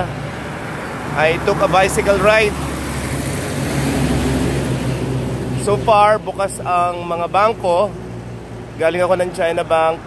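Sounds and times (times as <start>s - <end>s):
motorcycle passing: 0.0s - 8.7s
road noise: 0.0s - 10.0s
truck passing: 0.0s - 10.0s.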